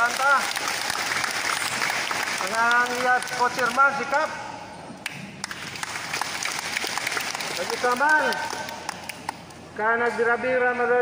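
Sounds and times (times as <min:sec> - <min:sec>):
audience applauding: 0:00.0 - 0:03.8, 0:05.4 - 0:09.4.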